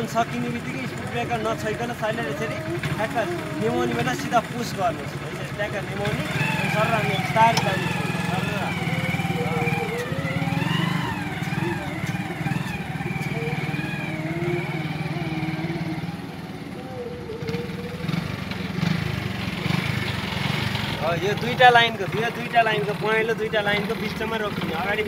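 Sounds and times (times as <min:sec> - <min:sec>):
motorcycle engine running at low speed: 0:00.0 - 0:25.0.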